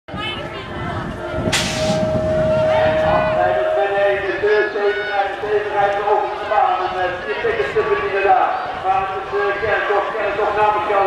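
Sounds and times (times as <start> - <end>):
steady tone: 0.4 - 5.9
sharp hiss: 1.5 - 2.0.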